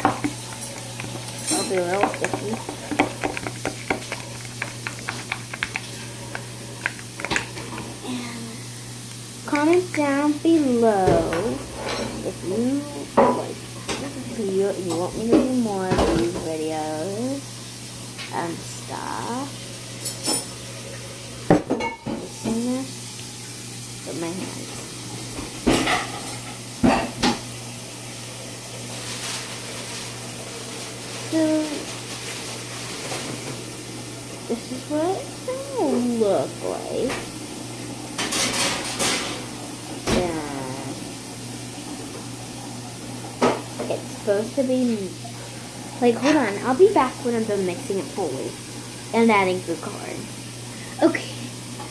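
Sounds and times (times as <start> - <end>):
spoon stirring sticky slime: 0.0 - 8.0, 9.5 - 10.3.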